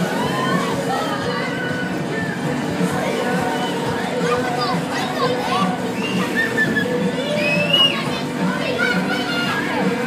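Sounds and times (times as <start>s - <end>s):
fairground ride music: 0.0s - 10.0s
riders and children shouting: 0.0s - 10.0s.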